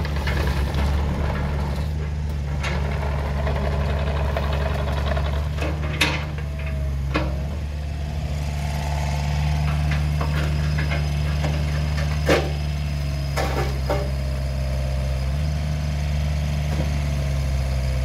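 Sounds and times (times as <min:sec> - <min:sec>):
excavator diesel engine running: 0:00.0 - 0:18.0.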